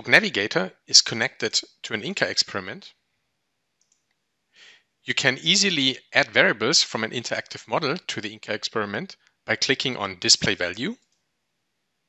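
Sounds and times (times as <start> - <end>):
person narrating: 0.0 - 2.9, 5.1 - 11.0
faint clicks: 3.8 - 4.2
soft breath: 4.6 - 4.8.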